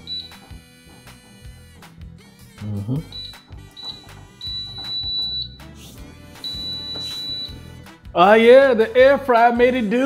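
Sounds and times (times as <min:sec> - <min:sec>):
high-pitched appliance beeps: 0:00.0 - 0:01.7, 0:02.9 - 0:07.8
background music: 0:00.0 - 0:10.0.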